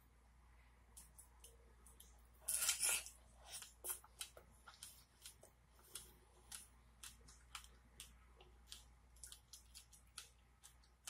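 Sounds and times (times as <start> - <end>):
close-miked chewing: 3.1 - 11.0.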